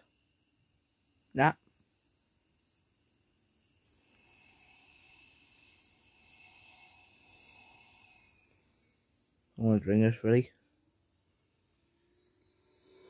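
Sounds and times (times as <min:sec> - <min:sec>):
soda fizzing in a can: 0:00.1 - 0:09.8.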